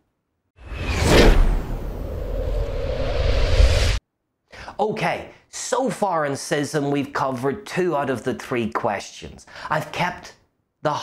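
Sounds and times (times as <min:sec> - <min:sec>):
whoosh sound effect: 0:00.6 - 0:04.0
deep rumble: 0:00.7 - 0:04.0.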